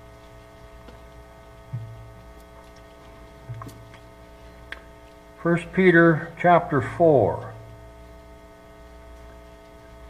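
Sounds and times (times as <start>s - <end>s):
electrical mains hum: 0.0s - 10.0s
low thump: 1.7s - 2.0s.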